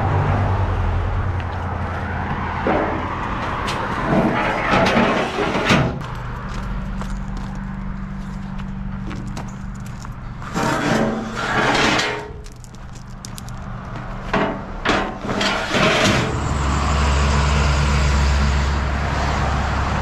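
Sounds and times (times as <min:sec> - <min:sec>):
footsteps crunching on gravel: 0:06.0 - 0:10.9, 0:12.2 - 0:14.3.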